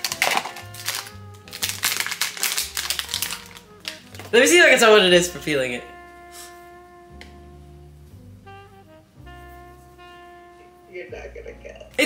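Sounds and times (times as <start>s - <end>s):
plastic packet crinkling and tearing: 0.0s - 4.8s
background music: 0.0s - 12.0s.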